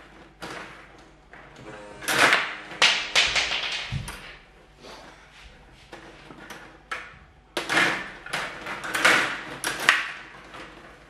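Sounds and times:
plastic players and puck clattering: 0:00.0 - 0:05.2, 0:05.8 - 0:11.0.

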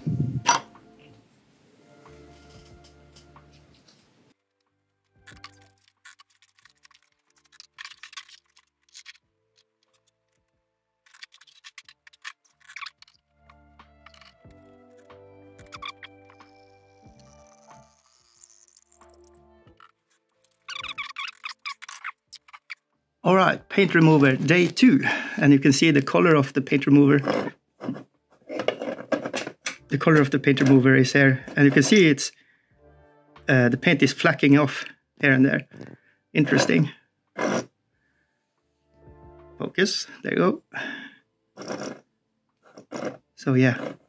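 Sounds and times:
quiet background music: 0:00.0 - 0:44.0.

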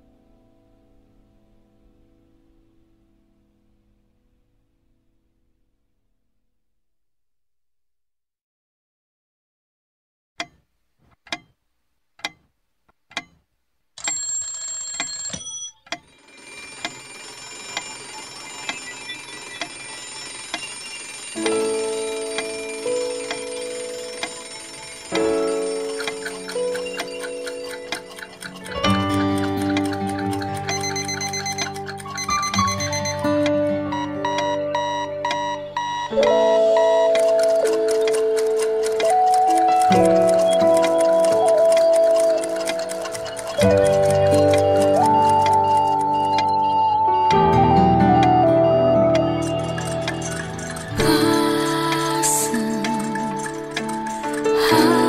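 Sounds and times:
clock-like ticks: 0:12.2 - 0:12.5, 0:13.1 - 0:13.4, 0:16.8 - 0:33.6, 0:34.3 - 0:46.6, 0:49.2 - 0:55.0
soft keyboard pad: 0:17.7 - 0:55.0.

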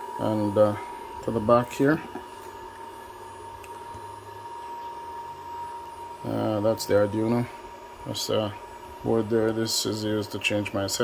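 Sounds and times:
cooling fans humming: 0:00.0 - 0:11.0
high-pitched motor whine: 0:00.0 - 0:11.0.

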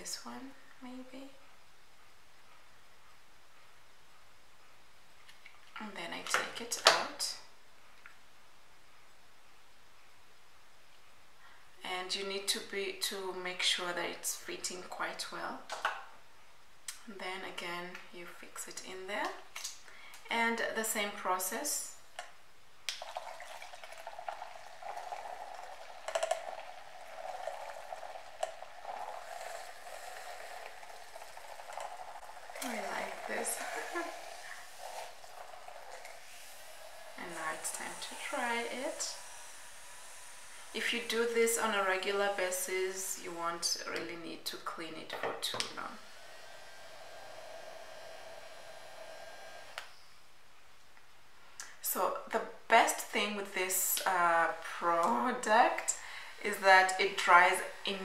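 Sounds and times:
motor whirring: 0:46.0 - 0:49.9.

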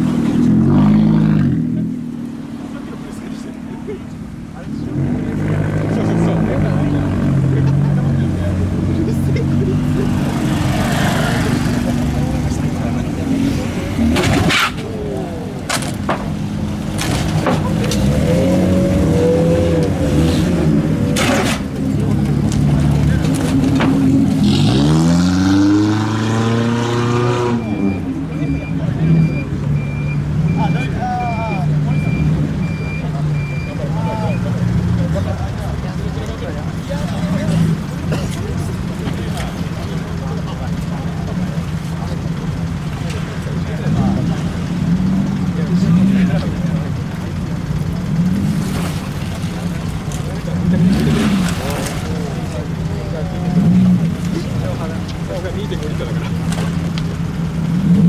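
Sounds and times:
engine revving: 0:00.0 - 0:03.9, 0:04.6 - 0:15.4, 0:16.7 - 0:58.0
car engines running slowly: 0:00.0 - 0:58.0
steady repeating beep: 0:27.4 - 0:34.5.

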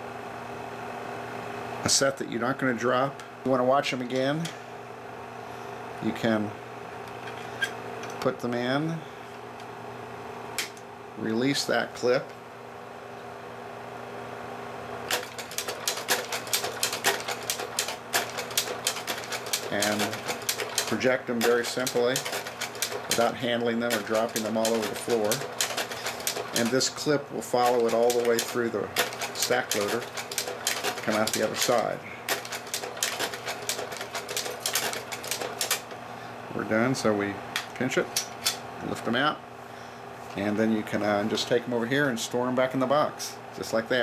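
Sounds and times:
slide projector fan hum: 0:00.0 - 0:44.0
mechanical clicks: 0:15.1 - 0:26.8, 0:27.6 - 0:35.9.

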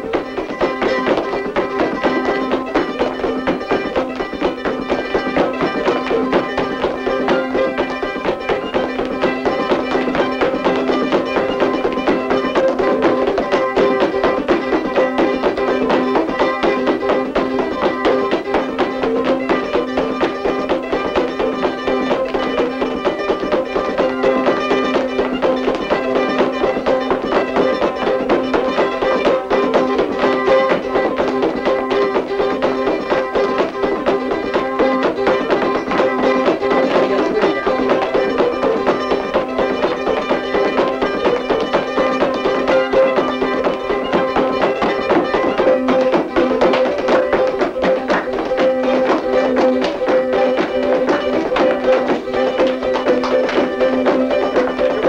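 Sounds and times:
jig on plucked string instrument: 0:00.0 - 0:55.0.

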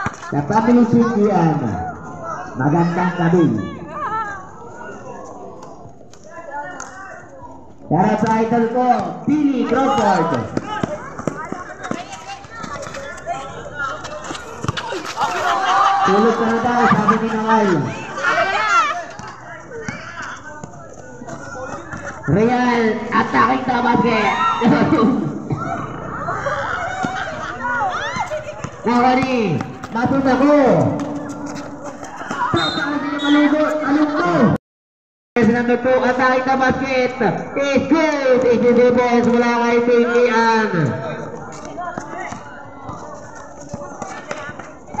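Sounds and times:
players and spectators shouting: 0:00.0 - 0:05.8, 0:08.3 - 0:34.5
basketball dribbled on concrete: 0:09.8 - 0:15.0, 0:28.1 - 0:32.6.

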